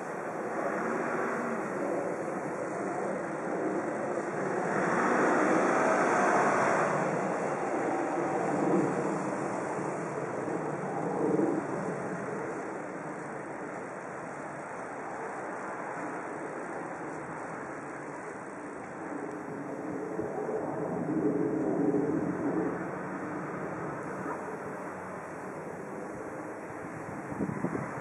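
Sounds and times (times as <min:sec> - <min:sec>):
distant road traffic hum: 0:00.0 - 0:28.0.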